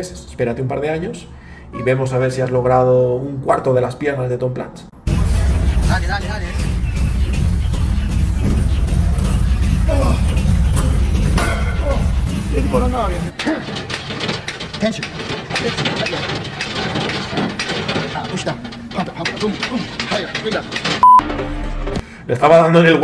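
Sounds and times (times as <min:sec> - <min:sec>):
music with heavy bass beat: 0:05.1 - 0:13.3
loud steady beep: 0:21.0 - 0:21.2.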